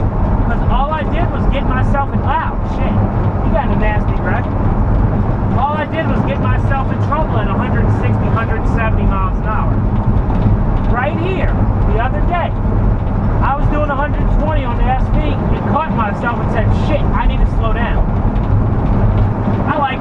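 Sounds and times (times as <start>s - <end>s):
road and engine drone in cabin: 0.0s - 20.0s
person talking: 0.5s - 4.5s, 5.6s - 9.8s, 10.9s - 12.6s, 13.4s - 18.1s, 19.6s - 20.0s.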